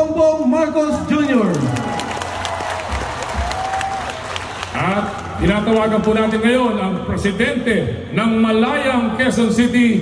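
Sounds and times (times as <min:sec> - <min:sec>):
crowd applauding: 0:01.1 - 0:06.8
crowd cheering: 0:01.2 - 0:06.4.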